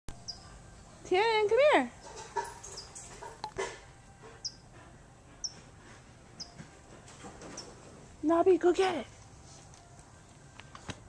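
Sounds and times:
bird chirping: 0.1 - 0.6, 2.1 - 3.2, 4.4 - 4.6, 6.4 - 6.6.

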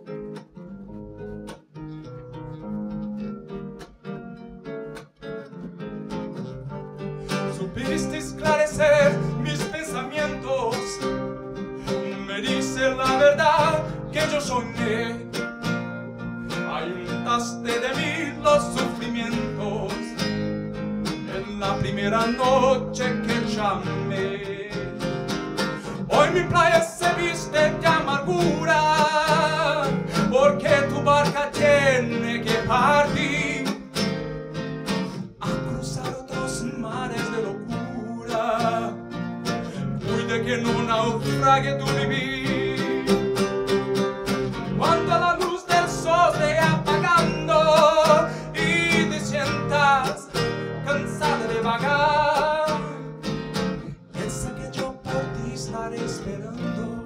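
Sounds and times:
classical guitar strummed and picked: 0.0 - 57.0
man singing: 7.3 - 15.5, 16.5 - 34.2, 35.4 - 39.0, 39.7 - 44.0, 44.8 - 53.3, 53.9 - 57.0.

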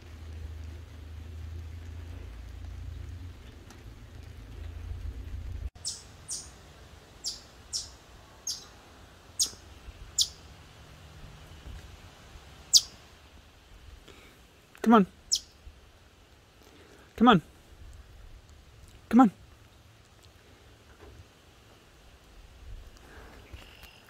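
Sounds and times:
low background rumble: 0.0 - 23.3
high-pitched animal chip calls: 5.8 - 6.6, 7.2 - 8.7, 9.4 - 9.6, 10.2 - 10.5, 12.7 - 13.0, 15.3 - 15.6.

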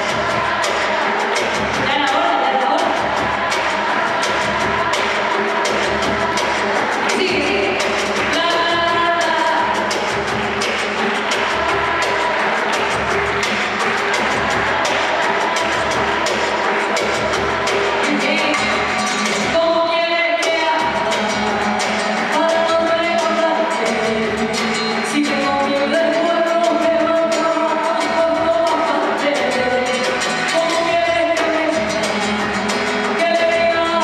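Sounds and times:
live band playing: 0.0 - 34.0
person singing: 11.0 - 34.0.

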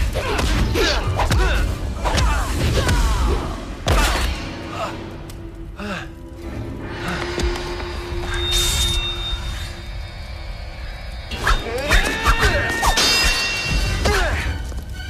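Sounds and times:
action music with sharp hits: 0.0 - 15.0
film soundtrack music: 0.0 - 15.0.

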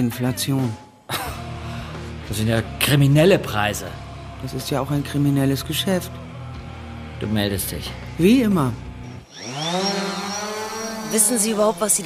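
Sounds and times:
drone motors buzzing whine: 8.8 - 12.0.

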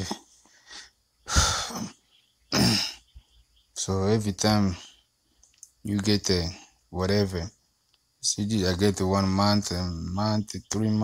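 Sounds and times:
man coughing: 1.4 - 3.0.

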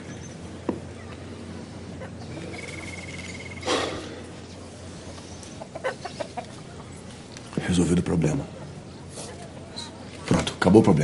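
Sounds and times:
bird calls: 0.0 - 7.1
background ambience: 0.0 - 11.0.

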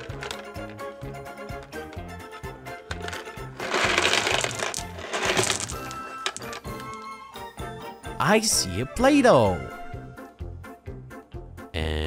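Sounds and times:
plastic balls clattering onto carpet: 0.0 - 2.2, 2.8 - 7.2
background music: 0.0 - 12.0.

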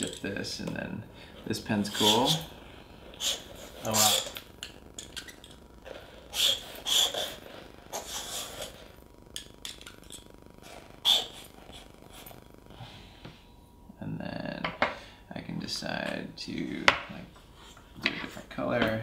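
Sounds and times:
pen scratching across paper: 6.4 - 8.8.

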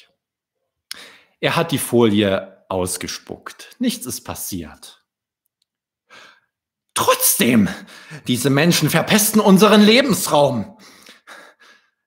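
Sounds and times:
man breathing: 0.9 - 1.4, 6.0 - 6.6, 7.8 - 8.3, 10.8 - 12.0.

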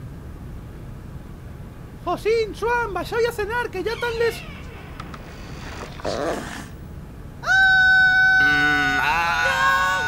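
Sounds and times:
lower voice screaming: 3.9 - 4.9, 7.4 - 10.0
girl screaming: 7.4 - 10.0.

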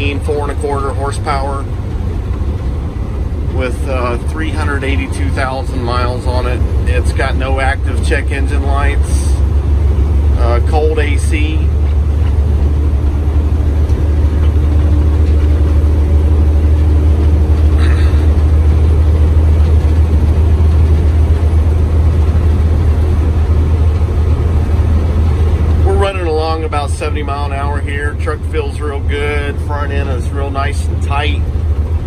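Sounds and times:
diesel truck engine drone: 0.0 - 32.0
road noise: 0.0 - 32.0.

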